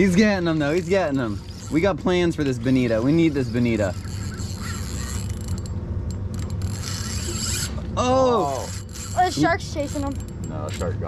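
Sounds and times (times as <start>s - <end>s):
fishing reel ticking whir: 0.0s - 7.8s, 8.4s - 10.9s.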